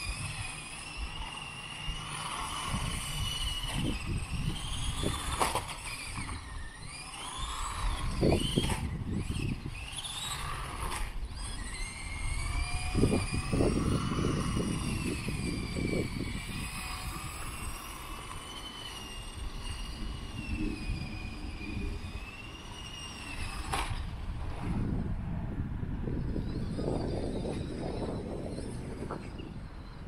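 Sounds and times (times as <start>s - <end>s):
electric motor whining: 0.0s - 30.0s.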